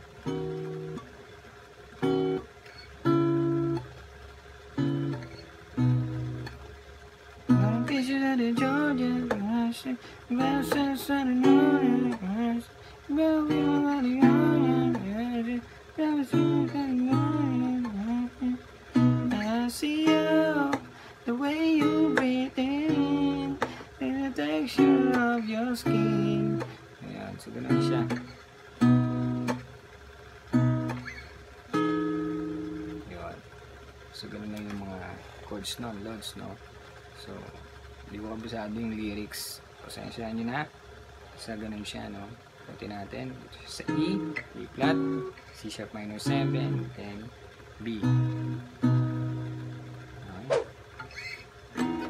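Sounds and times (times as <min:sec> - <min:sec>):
fingerpicked acoustic guitar chords: 0:00.0 - 0:52.0.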